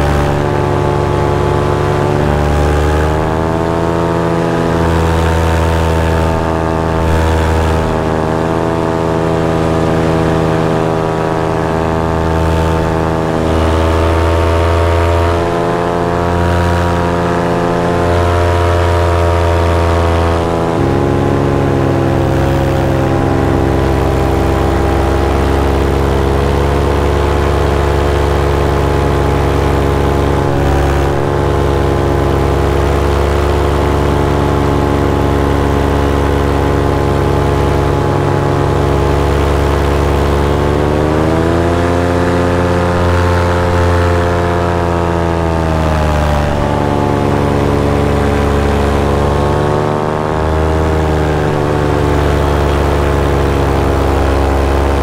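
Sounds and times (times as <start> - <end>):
paramotor engine and propeller: 0.0 - 55.0.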